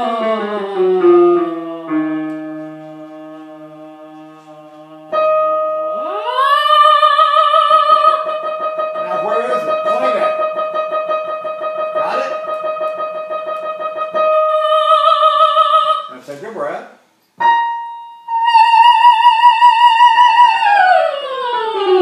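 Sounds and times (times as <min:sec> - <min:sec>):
piano accompaniment: 0:00.0 - 0:16.2, 0:17.3 - 0:22.0.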